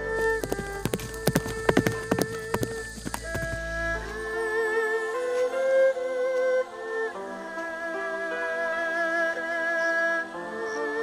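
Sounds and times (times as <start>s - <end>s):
background music held tones: 0.0s - 11.0s
horse galloping on dirt: 0.2s - 3.8s.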